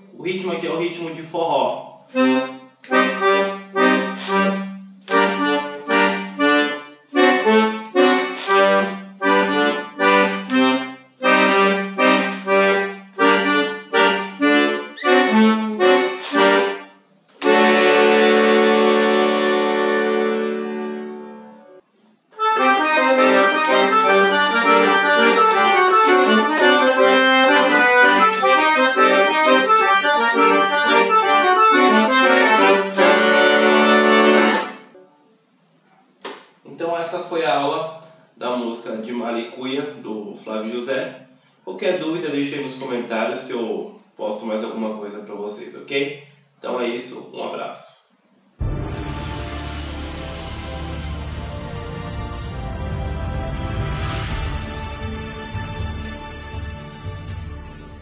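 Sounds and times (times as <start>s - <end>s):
accordion playing chords: 2.1s - 35.5s, 48.6s - 58.0s.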